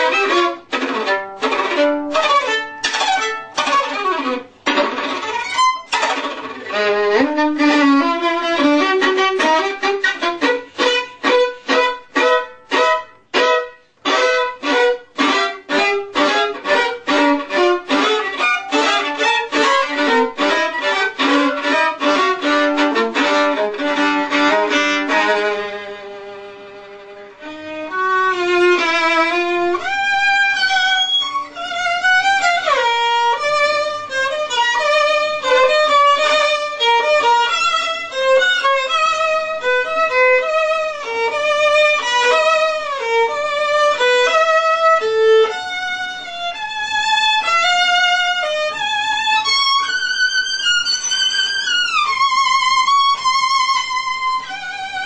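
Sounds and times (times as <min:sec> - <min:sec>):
solo violin: 0:00.0 - 0:55.0.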